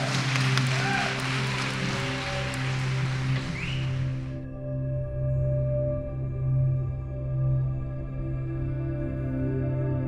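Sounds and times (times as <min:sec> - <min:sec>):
audience applause: 0:00.0 - 0:04.4
soft background music: 0:00.0 - 0:10.0.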